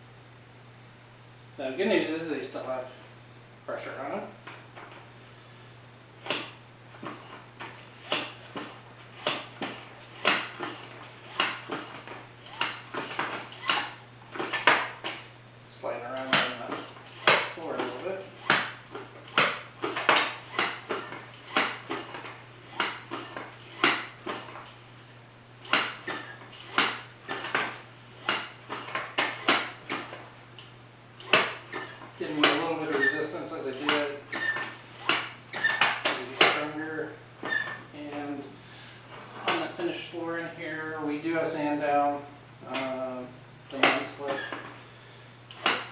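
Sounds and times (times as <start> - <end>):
foot pump clacking: 6.2 - 15.3, 15.9 - 24.8, 25.6 - 37.9, 39.1 - 39.9, 43.7 - 44.9, 45.5 - 45.9.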